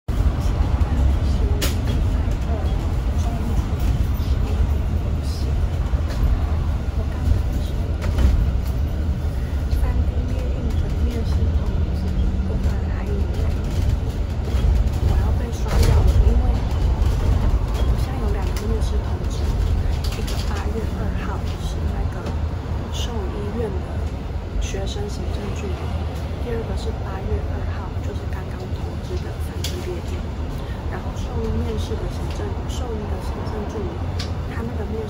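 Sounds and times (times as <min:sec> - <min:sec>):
bus engine low rumble: 0:00.0 - 0:35.0.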